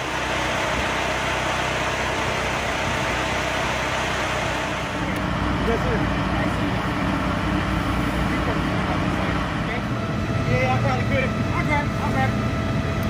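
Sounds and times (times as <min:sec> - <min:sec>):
fire engine drone: 0:00.0 - 0:13.0.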